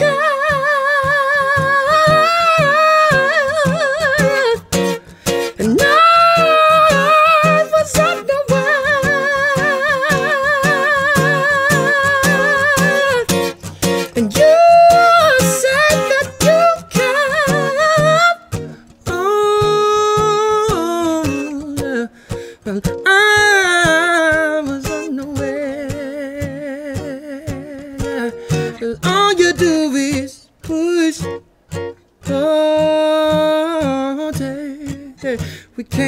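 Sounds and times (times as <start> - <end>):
man singing high wordless notes: 0.0 - 31.5, 32.2 - 36.0
strummed acoustic guitar: 0.0 - 36.0.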